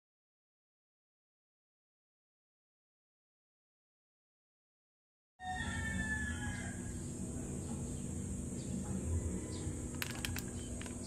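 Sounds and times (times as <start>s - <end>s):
high insect drone: 5.4s - 11.0s.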